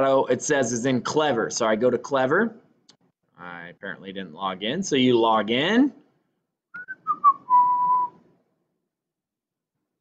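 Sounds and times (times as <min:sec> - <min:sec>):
person whistling: 0:06.7 - 0:08.3.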